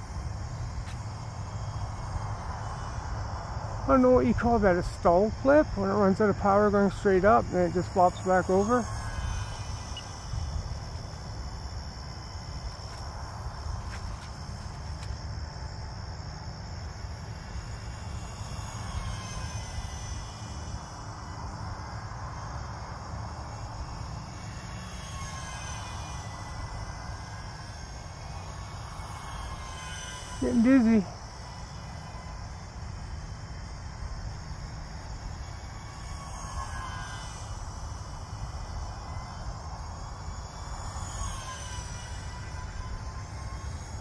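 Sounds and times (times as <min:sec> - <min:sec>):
crickets chirping: 0:00.0 - 0:44.0
faint whine of electric fans: 0:00.0 - 0:44.0.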